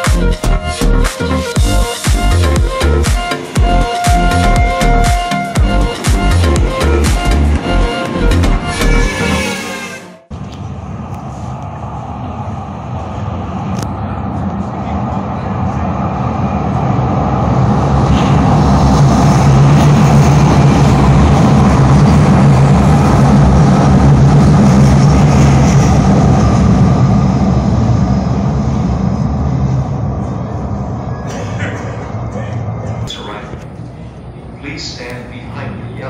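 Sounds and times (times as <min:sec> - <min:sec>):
light-rail train passing: 0:01.2 - 0:36.0.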